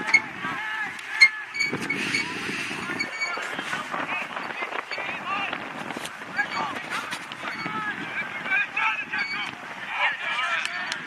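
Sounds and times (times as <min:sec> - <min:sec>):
distant players shouting: 0:00.0 - 0:11.0.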